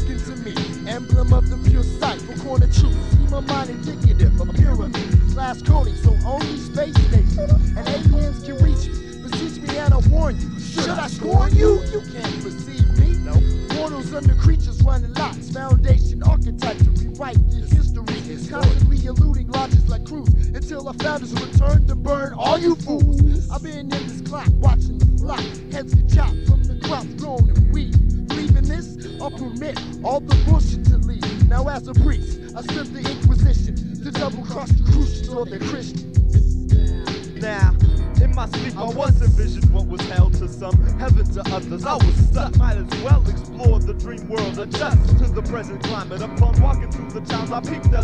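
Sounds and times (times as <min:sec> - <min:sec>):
rapping over a beat: 0:00.0 - 0:48.0
deep bass drum: 0:01.1 - 0:02.0, 0:02.6 - 0:09.1, 0:09.8 - 0:10.5, 0:11.2 - 0:12.1, 0:12.8 - 0:13.7, 0:14.3 - 0:20.8, 0:21.6 - 0:23.8, 0:24.5 - 0:25.4, 0:26.0 - 0:28.9, 0:30.3 - 0:32.4, 0:33.2 - 0:33.9, 0:34.7 - 0:35.3, 0:36.2 - 0:37.0, 0:37.6 - 0:47.3
high ticking percussion: 0:11.2 - 0:12.2, 0:22.5 - 0:23.6.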